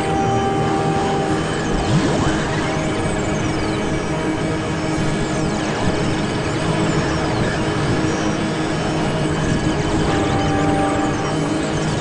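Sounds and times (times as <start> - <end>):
noise drone music: 0.0 - 12.0.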